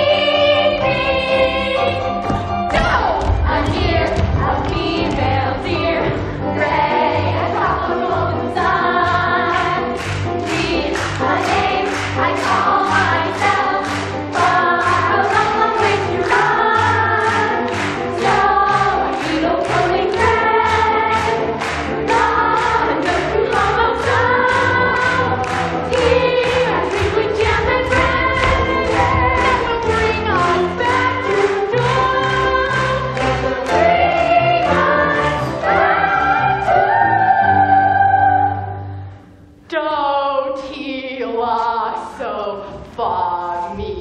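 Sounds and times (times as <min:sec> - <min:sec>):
young voices singing together: 0:00.0 - 0:02.1, 0:02.7 - 0:38.8
pit band playing: 0:00.4 - 0:37.6.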